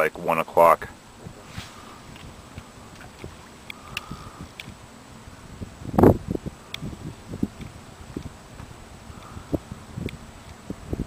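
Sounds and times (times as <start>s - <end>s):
wind on microphone: 1.1s - 11.0s
faint short clicks: 3.6s - 4.8s.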